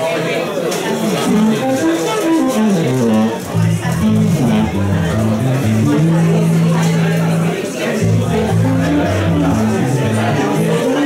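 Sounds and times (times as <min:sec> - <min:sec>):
jazz band: 0:01.2 - 0:11.0
plucked upright bass walking line: 0:01.2 - 0:11.0.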